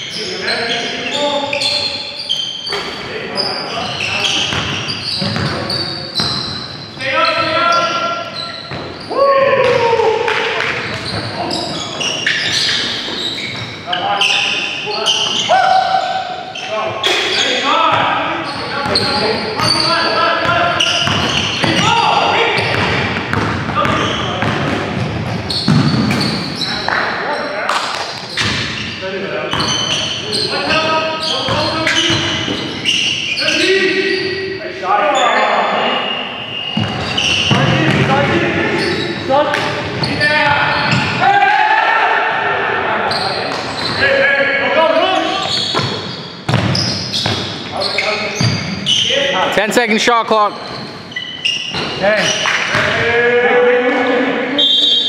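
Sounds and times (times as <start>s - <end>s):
players calling out: 0.0s - 55.0s
basketball bouncing on wooden floor: 4.5s - 5.6s, 21.0s - 21.9s, 22.6s - 26.4s, 45.6s - 47.5s.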